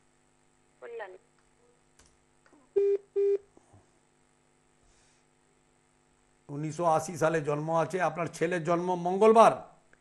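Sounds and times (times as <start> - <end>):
telephone line beeps: 2.8 - 3.4.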